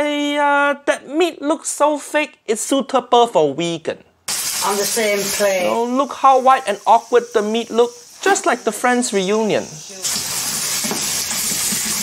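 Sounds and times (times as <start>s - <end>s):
food sizzling in hot oil: 4.3s - 12.0s.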